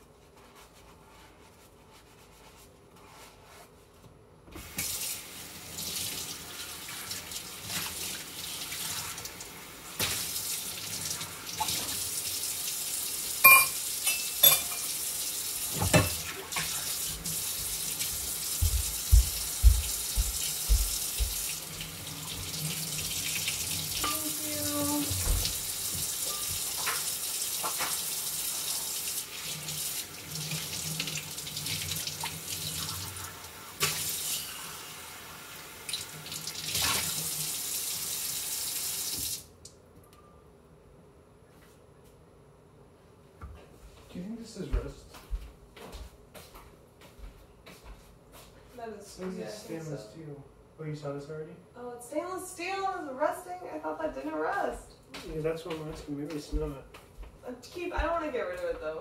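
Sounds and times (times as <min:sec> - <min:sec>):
faucet running into sink: 0:10.0 - 0:34.6
short ringing clink: 0:13.4 - 0:14.8
dishes clinking and knocking: 0:13.4 - 0:15.0, 0:15.8 - 0:16.3.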